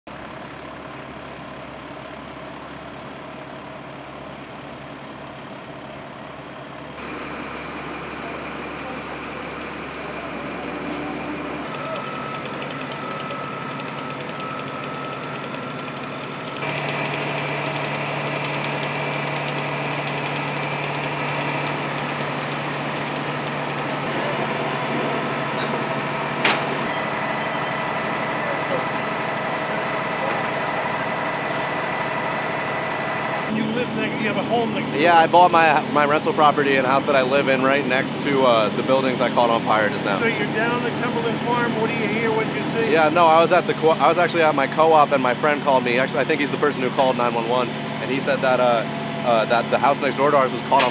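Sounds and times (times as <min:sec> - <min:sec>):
diesel engines running: 0:00.1 - 0:50.9.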